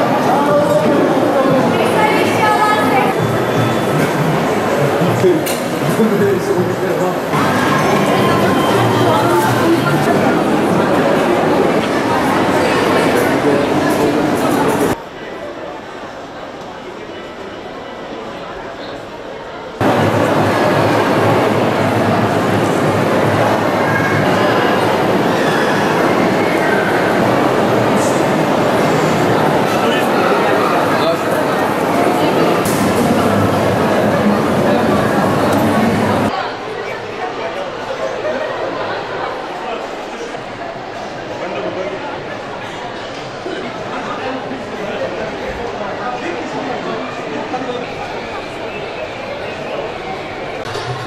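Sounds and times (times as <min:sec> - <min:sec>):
rumbling indoor crowd hubbub: 0:00.0 - 0:51.0.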